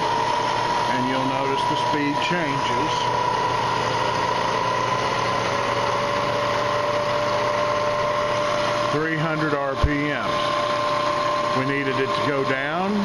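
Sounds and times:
milling machine motor whine: 0:00.0 - 0:13.0.

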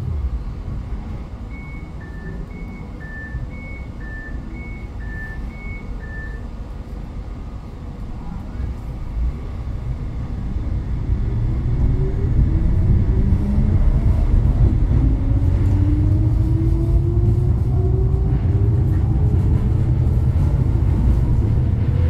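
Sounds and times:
tram electric drive whine: 0:00.0 - 0:22.0
wheels rumbling on rails: 0:00.0 - 0:22.0.

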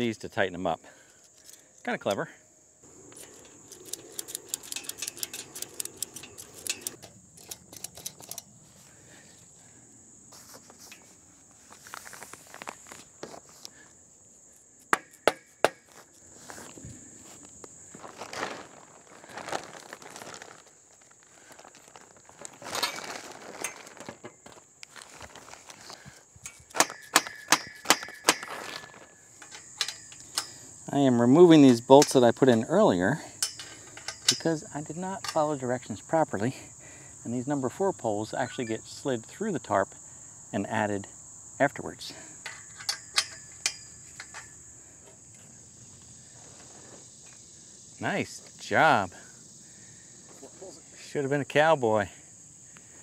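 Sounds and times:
ratchet strap buckles clicking: 0:03.1 - 0:08.5
sharp clicks and knocks: 0:03.1 - 0:08.5, 0:42.4 - 0:44.6.

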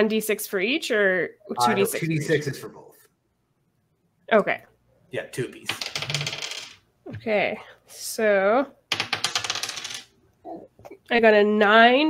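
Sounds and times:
dice clattering on hard surface: 0:05.7 - 0:06.8, 0:08.9 - 0:10.1.

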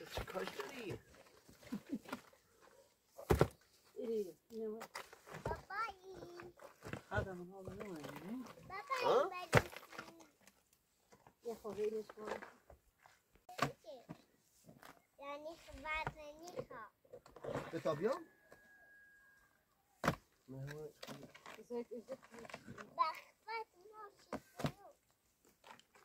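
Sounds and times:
child's voice: 0:05.4 - 0:06.6, 0:08.6 - 0:10.4, 0:13.5 - 0:14.2, 0:15.2 - 0:16.9, 0:22.8 - 0:25.0.

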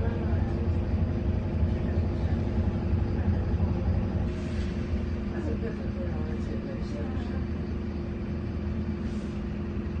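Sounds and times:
bus engine droning: 0:00.0 - 0:10.0.

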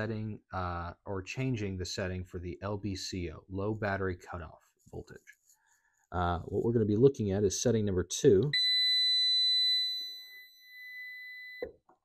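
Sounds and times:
continuous high-pitched beep: 0:08.5 - 0:11.7.

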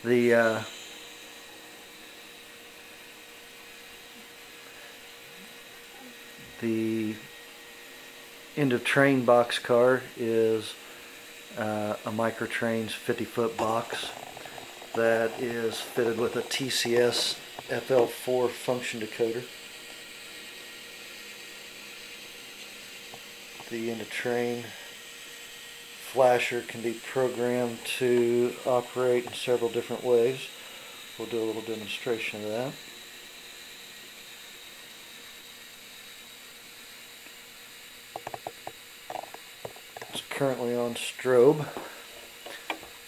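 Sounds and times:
model train hum and whir: 0:00.0 - 0:43.0
steady hiss: 0:00.0 - 0:43.0.

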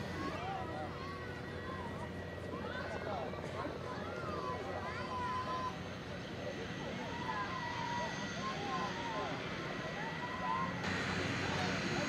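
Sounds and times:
light aircraft engine drone: 0:00.0 - 0:12.0.

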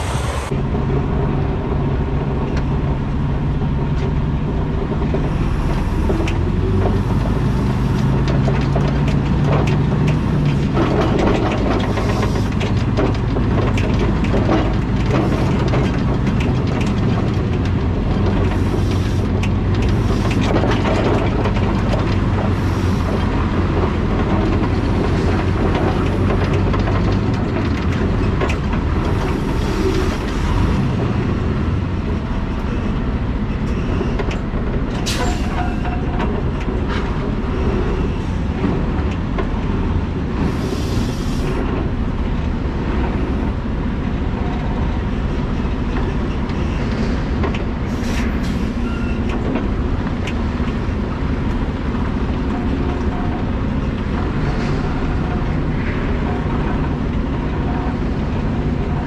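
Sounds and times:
diesel truck rumble: 0:00.0 - 0:59.0
trailer rattling: 0:00.0 - 0:59.0.

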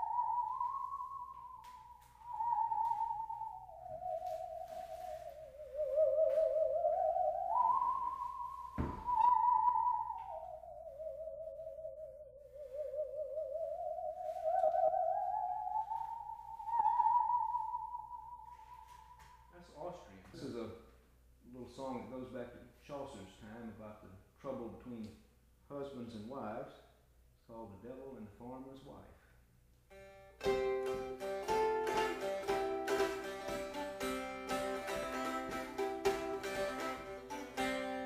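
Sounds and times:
single knock: 0:08.8 - 0:09.1
bowed musical saw melody: 0:29.9 - 0:38.0.

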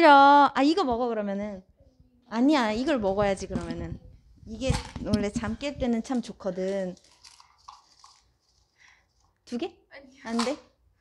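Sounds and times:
faint rustling and scraping: 0:02.7 - 0:09.6.

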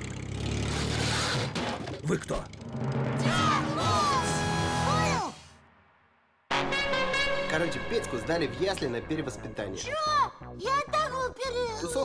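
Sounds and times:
cartoon tracked vehicle engine rumble: 0:00.0 - 0:03.9.

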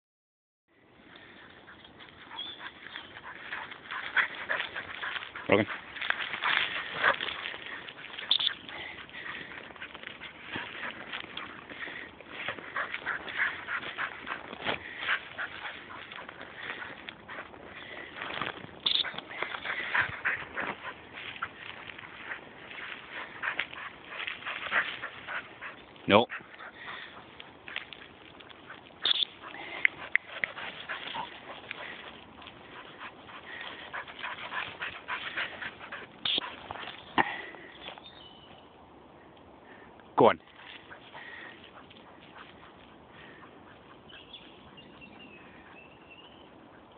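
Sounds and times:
dry bracken rustling: 0:01.2 - 0:38.0.

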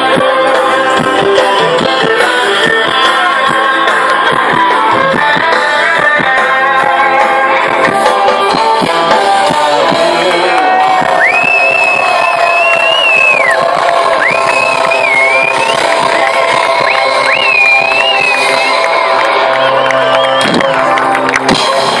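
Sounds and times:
crowd cheering: 0:00.0 - 0:22.0
folk-rock band playing: 0:00.0 - 0:22.0.

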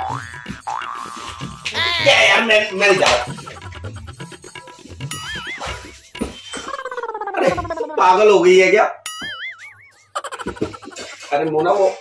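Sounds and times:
man crying out: 0:01.7 - 0:02.5.

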